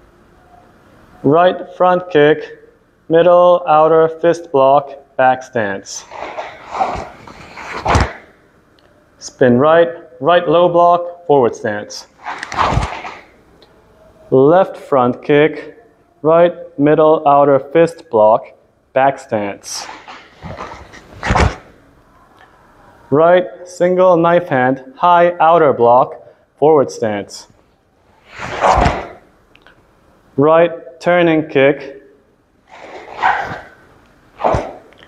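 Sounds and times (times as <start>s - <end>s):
uniform swishing: 5.9s - 8.3s, 12.0s - 13.4s, 19.7s - 21.7s, 28.2s - 29.3s, 32.7s - 34.9s
feet on foam mat: 6.0s - 8.3s, 12.2s - 13.4s, 19.8s - 21.7s, 28.2s - 29.2s, 32.7s - 33.8s, 34.4s - 34.9s.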